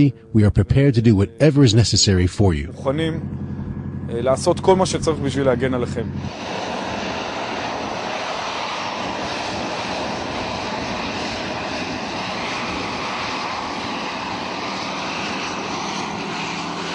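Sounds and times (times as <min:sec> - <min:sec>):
steady engine noise: 0:01.7 - 0:16.9.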